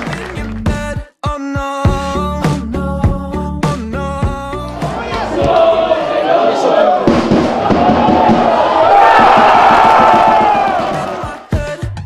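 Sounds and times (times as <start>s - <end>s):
background music with steady beat: 0.0s - 6.3s, 6.9s - 12.0s
stadium crowd cheering: 4.7s - 11.5s.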